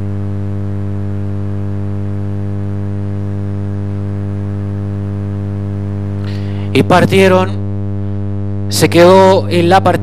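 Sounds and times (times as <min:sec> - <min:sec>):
loud electrical hum: 0:00.0 - 0:10.0.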